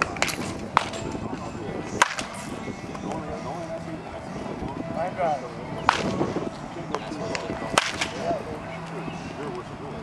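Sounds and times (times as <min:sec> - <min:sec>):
baseball bat hitting ball: 0:00.0 - 0:01.3, 0:01.9 - 0:02.5, 0:05.8 - 0:06.3, 0:06.9 - 0:08.3
faint voices: 0:00.0 - 0:10.0.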